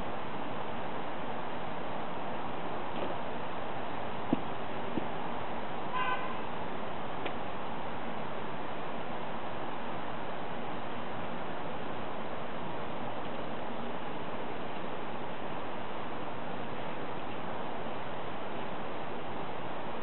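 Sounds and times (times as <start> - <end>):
outdoor background hiss: 0.0 - 20.0
distant car horn toot: 5.9 - 6.4.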